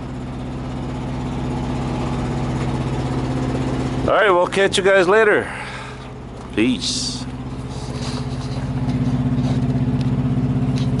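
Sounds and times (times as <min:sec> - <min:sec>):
truck diesel engine idling: 0:00.0 - 0:11.0.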